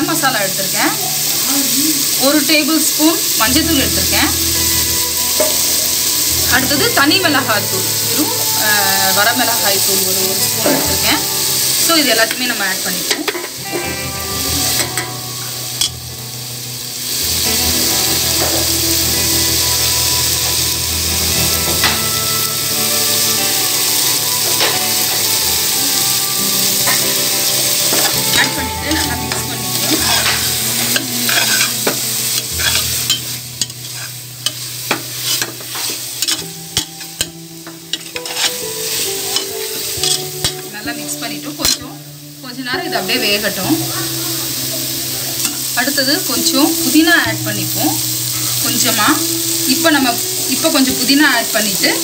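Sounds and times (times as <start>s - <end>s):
food sizzling in oil: 0.0s - 52.0s
metal spatula scraping pot: 27.9s - 37.0s, 37.9s - 38.6s.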